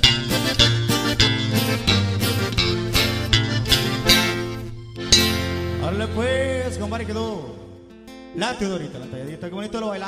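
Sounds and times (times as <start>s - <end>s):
guitars and bass playing: 0.0s - 9.6s.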